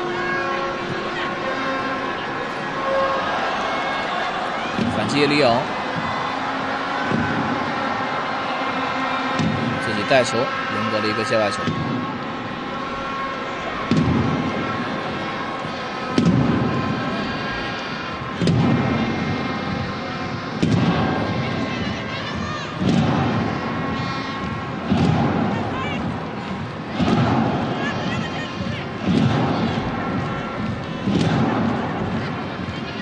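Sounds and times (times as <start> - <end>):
drum beating slowly: 0.0 - 10.7, 11.5 - 33.0
stadium crowd noise: 0.0 - 33.0.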